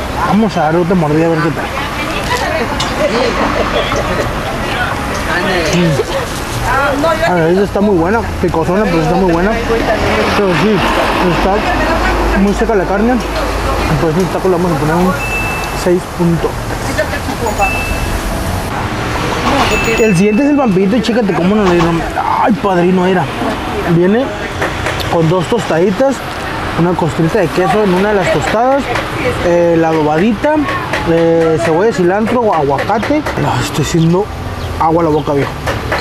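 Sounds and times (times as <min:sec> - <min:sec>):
people talking: 0:00.0 - 0:35.5
traffic rushing: 0:00.0 - 0:36.0.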